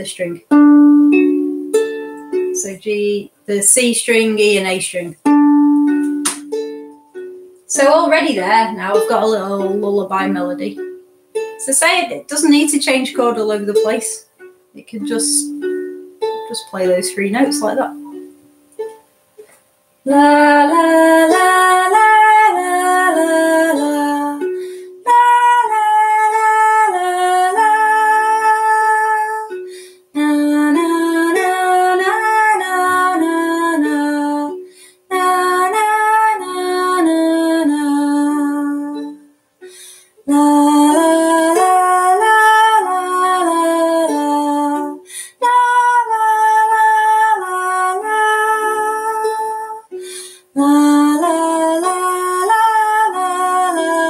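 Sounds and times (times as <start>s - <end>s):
softly plucked ukulele: 0.5s - 2.6s, 5.2s - 7.6s, 13.8s - 19.0s, 20.7s - 29.7s, 30.3s - 34.6s, 35.4s - 50.1s
woman singing wordless lullaby: 2.1s - 5.3s, 7.6s - 18.4s, 20.0s - 54.0s.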